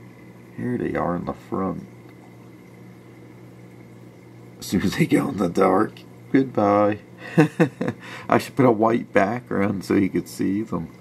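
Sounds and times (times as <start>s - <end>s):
low steady hum: 0.0s - 11.0s
water trickling into tank: 0.0s - 11.0s.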